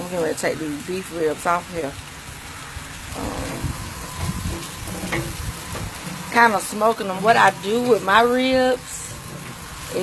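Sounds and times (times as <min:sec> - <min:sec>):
ribs sizzling on a grill: 0:00.0 - 0:10.0
low rumbling thuds: 0:03.0 - 0:10.0.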